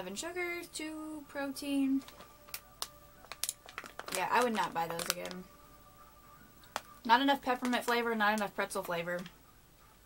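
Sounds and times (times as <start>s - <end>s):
faint steady hum: 0.0s - 10.0s
plastic bag crinkling: 2.0s - 5.5s, 6.6s - 8.8s.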